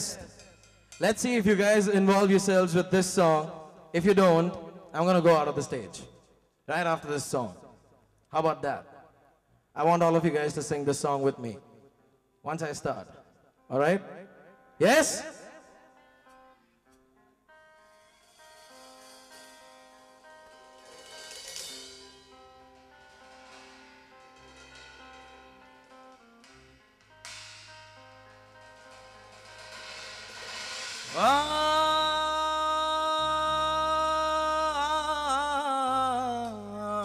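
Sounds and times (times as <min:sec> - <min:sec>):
light cymbal: 0:00.0 - 0:03.8, 0:17.8 - 0:32.4
electric guitar notes: 0:13.1 - 0:37.0
low bass notes: 0:21.6 - 0:37.0
loud long held note: 0:27.1 - 0:36.3.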